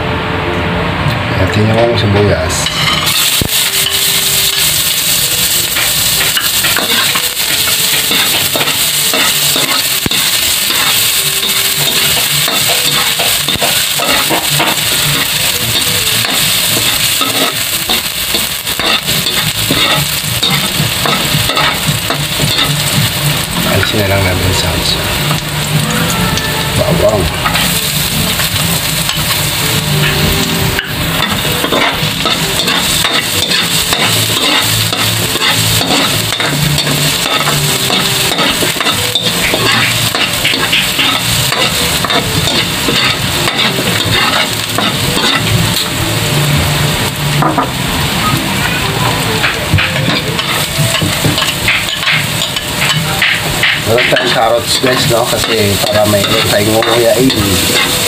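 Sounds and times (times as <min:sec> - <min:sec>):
metal ladle scraping pan: 0:02.5 - 0:23.5, 0:26.4 - 0:45.9, 0:49.4 - 0:58.0
onion sizzling in hot oil: 0:02.5 - 0:58.0.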